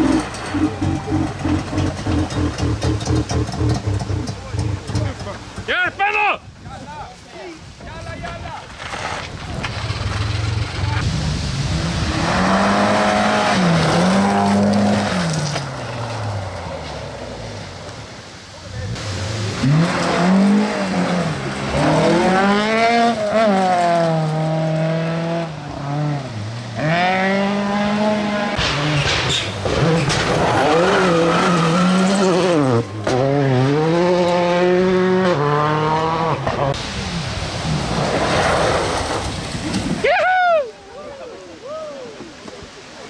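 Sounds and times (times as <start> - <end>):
rally car engines revving: 0.0 - 5.8, 8.7 - 40.0.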